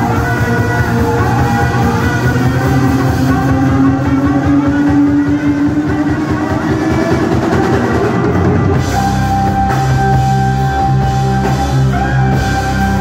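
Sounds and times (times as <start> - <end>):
live electronic jazz: 0.0 - 13.0.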